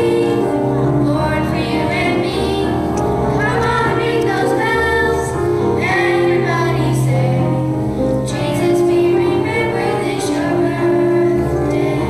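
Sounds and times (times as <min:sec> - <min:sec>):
children singing: 0:00.0 - 0:07.6, 0:08.3 - 0:12.0
instrumental accompaniment: 0:00.0 - 0:12.0.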